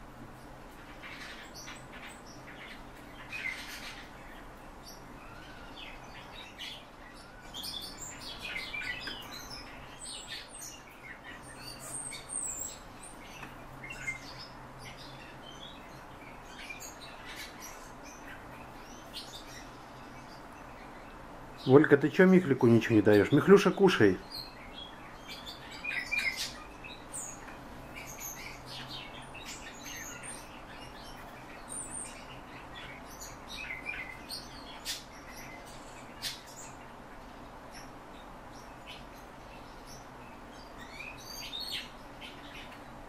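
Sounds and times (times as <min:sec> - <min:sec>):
birds chirping: 0:00.0 - 0:43.0.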